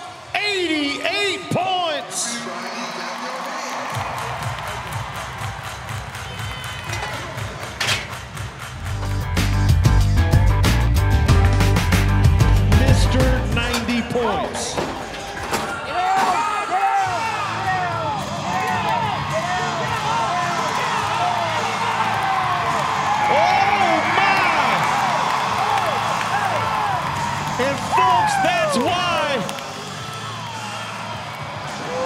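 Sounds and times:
crowd shouting and cheering: 0:00.0 - 0:32.0
music with heavy bass beat: 0:08.8 - 0:13.6.

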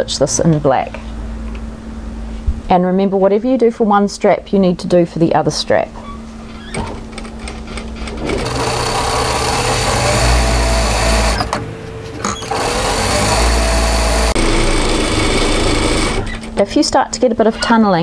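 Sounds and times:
sewing machine stitching: 0:08.3 - 0:11.6, 0:12.2 - 0:16.6.

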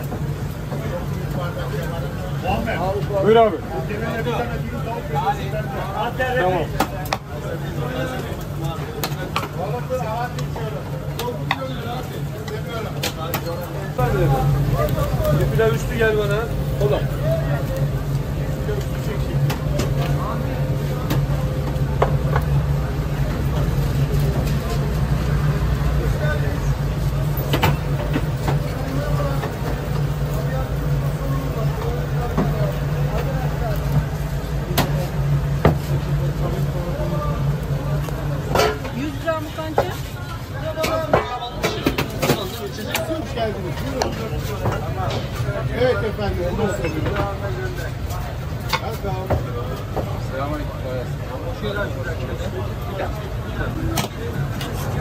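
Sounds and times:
indistinct background voices: 0:00.0 - 0:55.0
low mechanical hum: 0:00.0 - 0:55.0.

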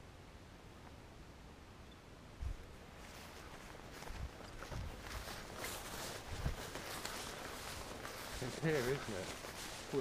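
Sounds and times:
footsteps through long grass: 0:02.5 - 0:10.0.

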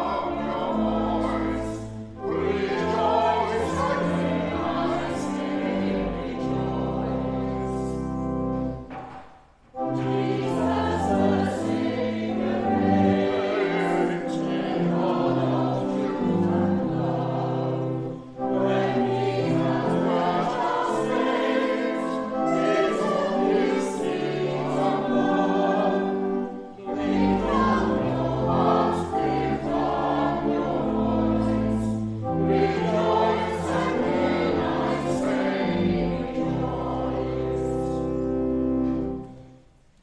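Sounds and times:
held low accompanying notes: 0:00.0 - 0:09.0, 0:09.7 - 0:39.7
choir singing a hymn: 0:00.0 - 0:39.6.

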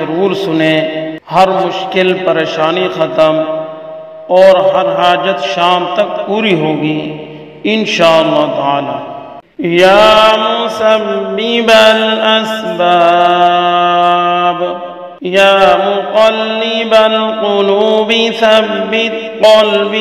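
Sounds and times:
man chanting melodically: 0:00.0 - 0:20.0.

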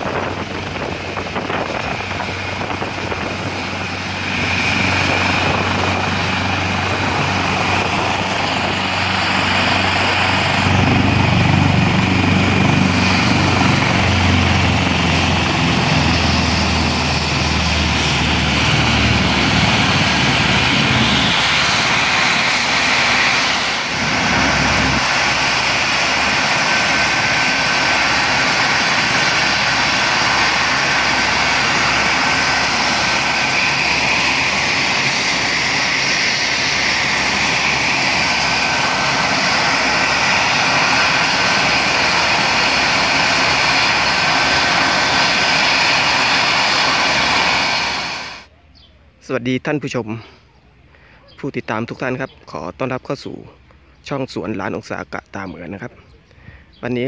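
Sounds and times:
deep rumble: 0:00.0 - 0:48.0
helicopter turbine and rotor noise: 0:00.0 - 0:48.5
thin turbine whine: 0:00.0 - 0:48.5.

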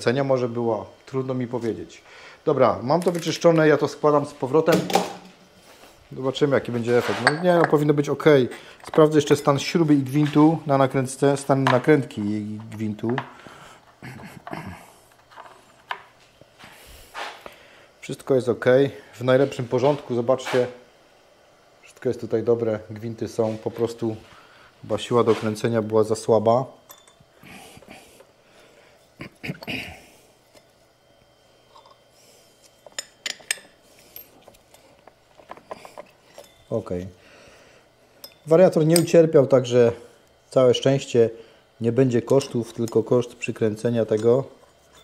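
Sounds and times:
metal tools clinking: 0:26.8 - 0:27.3, 0:32.8 - 0:37.0, 0:38.2 - 0:39.2, 0:44.0 - 0:45.0.

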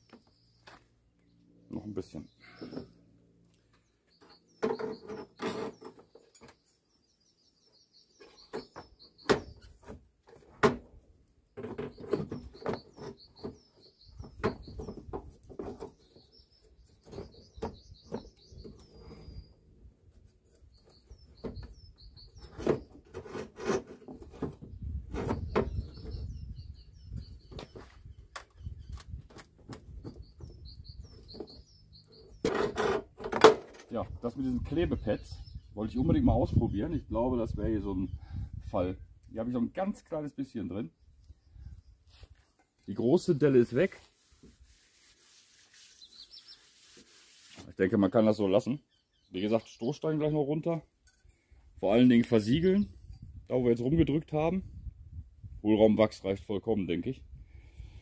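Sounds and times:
small birds chirping: 0:00.0 - 0:10.5, 0:11.3 - 0:33.0, 0:33.7 - 0:55.6.

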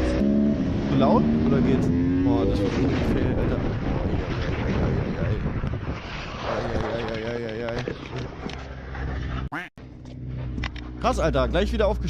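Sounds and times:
low rumble: 0:00.0 - 0:12.0
wind noise: 0:00.6 - 0:09.2.

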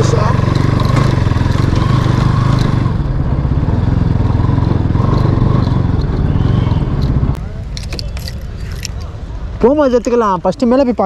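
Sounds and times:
motorcycle engine running: 0:00.0 - 0:07.4.

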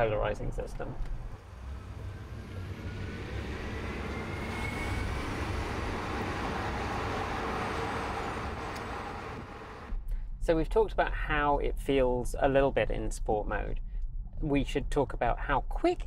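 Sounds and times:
tyre and road noise: 0:00.5 - 0:10.0.

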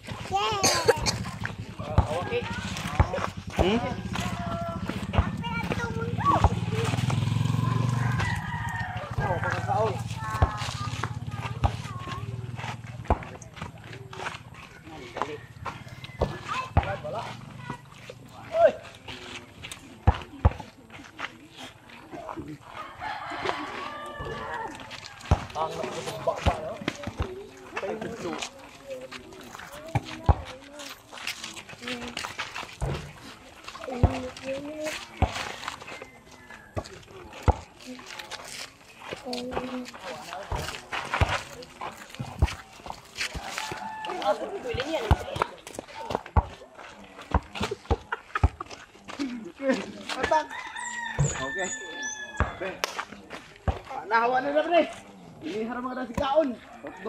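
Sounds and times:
motorcycle engine passing: 0:01.0 - 0:13.0.

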